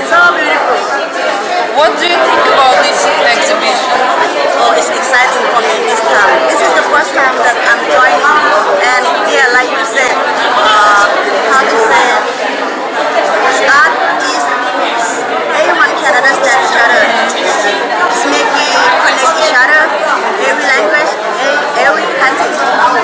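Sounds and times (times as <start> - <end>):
crowd chatter in a hall: 0.0 - 23.0.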